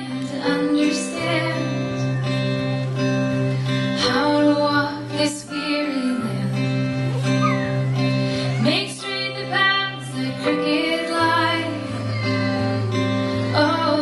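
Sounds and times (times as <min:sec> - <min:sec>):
guitars playing slow song: 0:00.0 - 0:14.0
person singing: 0:00.0 - 0:14.0.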